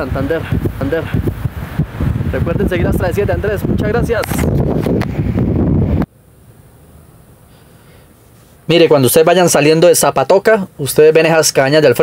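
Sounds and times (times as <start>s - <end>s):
wind on microphone: 0.0s - 6.1s
faint steady hiss: 0.0s - 12.0s.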